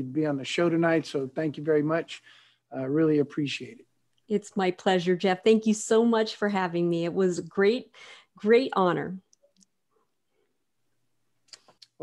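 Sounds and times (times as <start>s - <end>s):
woman speaking: 4.3s - 9.2s.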